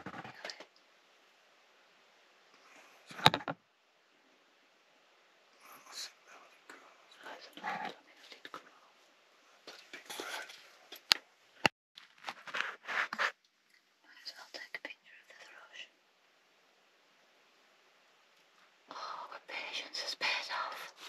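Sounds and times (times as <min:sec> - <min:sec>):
hushed whispering voices: 0:05.6 - 0:09.0, 0:09.7 - 0:10.8, 0:14.1 - 0:15.9, 0:18.9 - 0:21.0.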